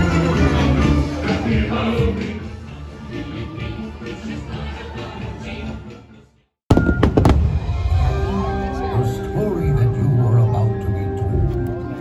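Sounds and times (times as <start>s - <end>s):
background music: 0.0s - 12.0s
fireworks bangs: 6.7s - 8.2s.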